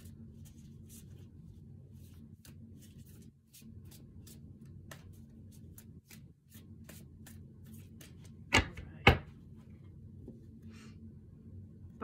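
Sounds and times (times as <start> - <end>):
cards being shuffled: 2.0 - 8.4.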